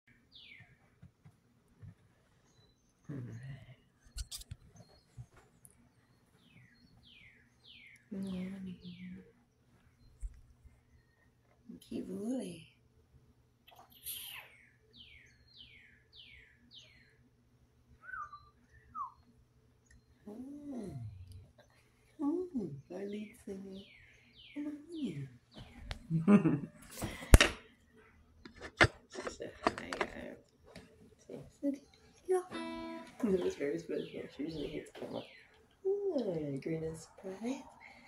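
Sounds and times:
bird chirp: 0.1 - 1.0, 2.2 - 12.7, 13.7 - 17.3, 18.0 - 26.2, 31.3 - 38.0.

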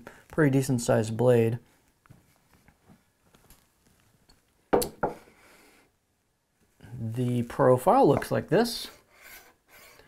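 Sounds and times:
knocks on a countertop: 4.8 - 5.2.

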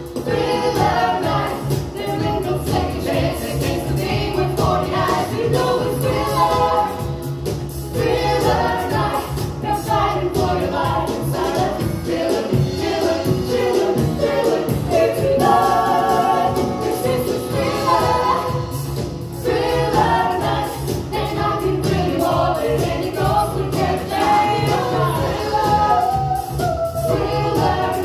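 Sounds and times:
bass guitar: 0.0 - 28.0
drums: 0.0 - 28.0
group of singers singing: 0.0 - 28.0
keyboard: 0.0 - 28.0.

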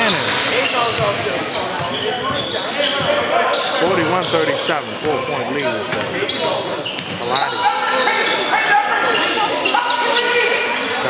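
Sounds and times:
people calling out in a gym: 0.0 - 4.5, 5.7 - 11.0.

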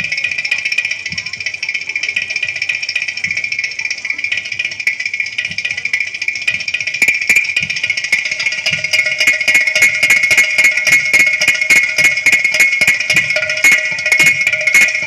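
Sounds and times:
hand drums fast rhythm: 0.0 - 15.0
steady held tone: 0.0 - 15.0.

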